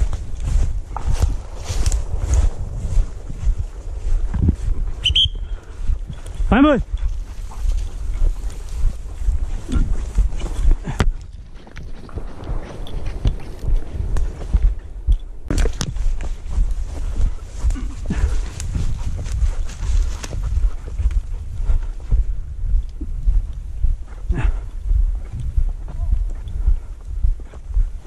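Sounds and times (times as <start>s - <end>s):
footsteps crunching dry leaves: 0.0s - 5.0s
microphone handling noise: 0.0s - 27.9s
low wind rumble: 0.0s - 28.0s.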